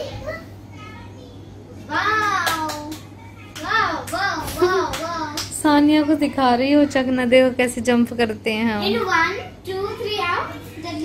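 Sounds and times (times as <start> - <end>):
child's voice: 0.0 - 6.9, 8.8 - 11.0.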